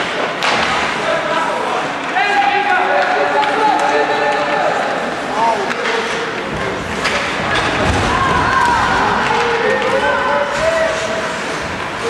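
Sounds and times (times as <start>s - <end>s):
ice hockey play noise: 0.0s - 12.0s
players shouting: 1.1s - 12.0s.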